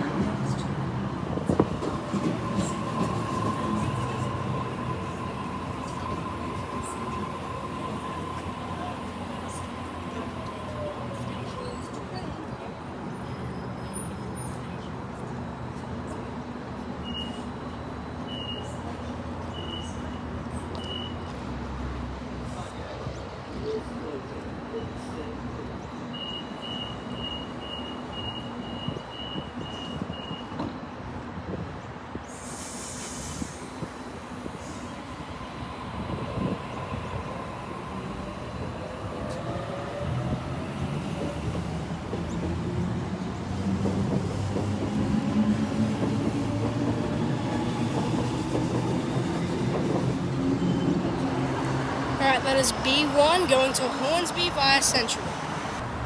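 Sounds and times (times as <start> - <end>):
air hiss: 32.2 - 33.9.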